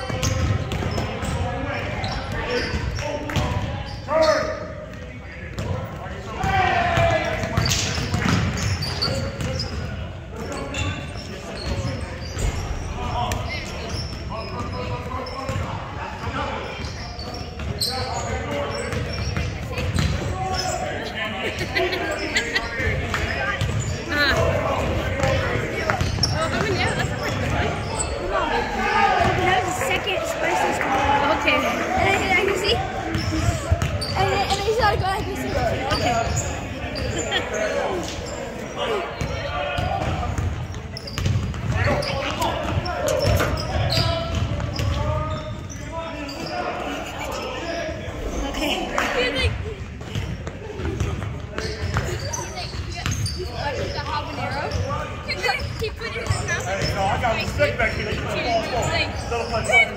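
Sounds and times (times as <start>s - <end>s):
players calling out: 0.0s - 59.9s.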